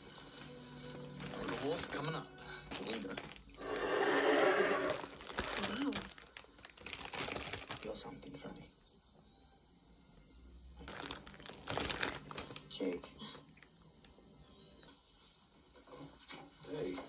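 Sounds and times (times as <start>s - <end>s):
plastic bread bag crinkling: 0.2s - 8.1s, 10.8s - 12.8s.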